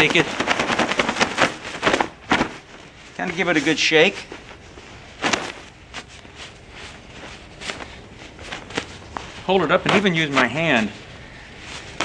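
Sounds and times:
fabric flapping and rustling: 0.0 - 12.0.

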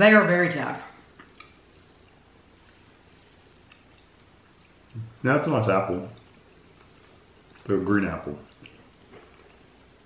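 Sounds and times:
chewing gummy candy: 5.9 - 10.0.

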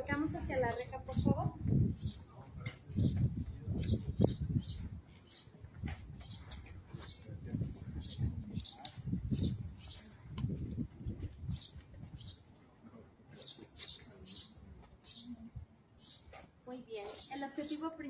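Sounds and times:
small birds chirping: 0.3 - 10.6, 11.2 - 12.6, 13.3 - 18.0.

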